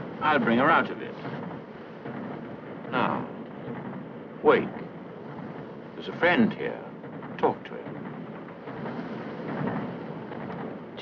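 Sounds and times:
moving train running noise: 0.0 - 11.0.

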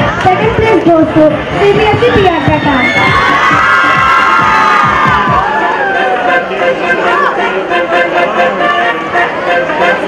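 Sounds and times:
children cheering and shouting: 1.8 - 7.6.

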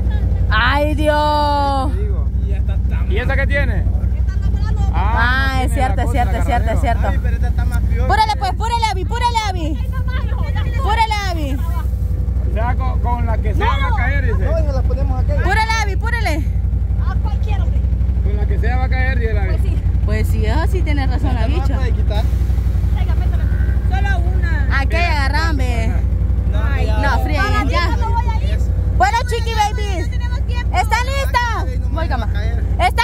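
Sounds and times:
low rumble: 0.0 - 33.0
voices talking: 0.0 - 33.0.

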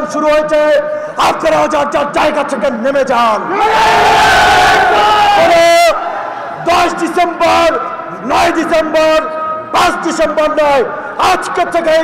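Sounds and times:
man shouting through loudspeakers: 0.0 - 12.0
crowd shouting: 3.5 - 6.6.

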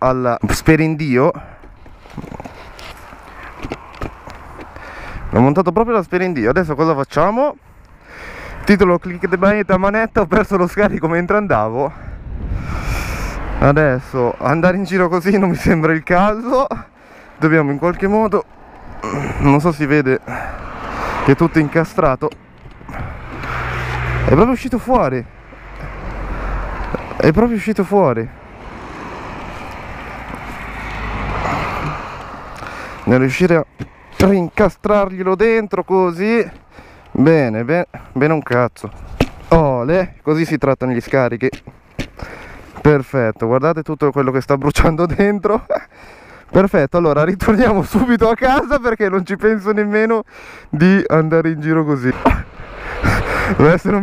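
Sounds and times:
car passing on road: 1.4 - 6.2, 11.8 - 37.5, 50.6 - 54.0
wind noise on microphone: 11.9 - 13.8
gloved hands knocking and rustling: 39.1 - 39.5.

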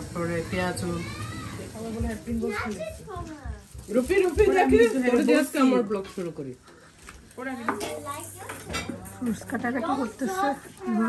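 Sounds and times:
cutlery tapping against dishes: 7.6 - 9.2.

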